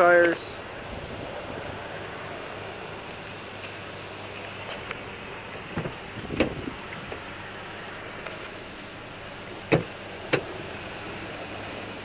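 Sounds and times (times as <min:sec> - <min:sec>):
car door latch clicks: 0:05.7 - 0:07.2, 0:09.7 - 0:10.5.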